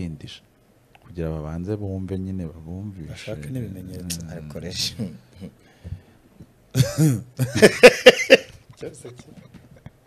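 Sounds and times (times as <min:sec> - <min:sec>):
person coughing: 0:06.8 - 0:07.3.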